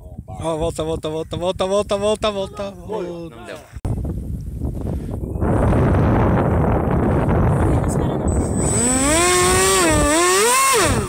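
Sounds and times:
model aeroplane motor and propeller: 0:08.3 - 0:11.0.

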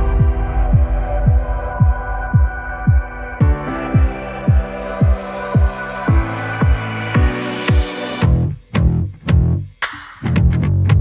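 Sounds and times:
deep kick drum beating: 0:00.0 - 0:09.5
held chords: 0:00.0 - 0:11.0.

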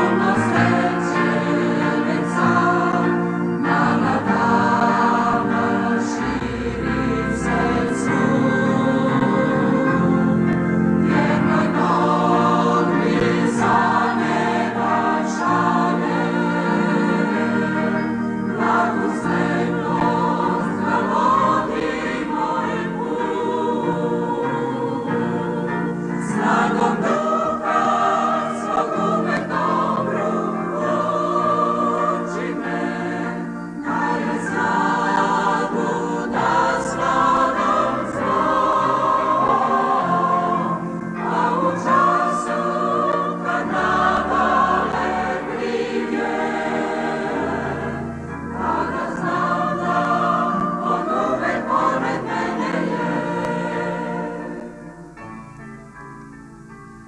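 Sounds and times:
mixed choir singing a hymn: 0:00.0 - 0:55.4.

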